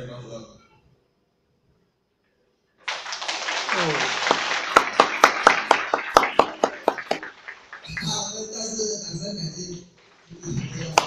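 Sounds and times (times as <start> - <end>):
audience applauding: 2.8 - 8.8, 10.2 - 11.0.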